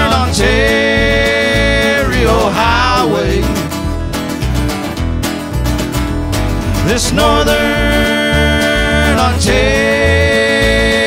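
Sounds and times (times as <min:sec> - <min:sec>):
acoustic guitar: 0:00.0 - 0:11.0
bass rhythm: 0:00.0 - 0:11.0.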